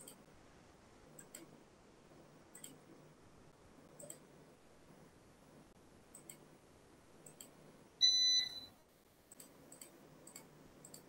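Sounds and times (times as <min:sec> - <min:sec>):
faint clicks: 0:06.1 - 0:06.5, 0:07.2 - 0:07.6, 0:09.3 - 0:11.0
short electronic beep: 0:08.0 - 0:08.7.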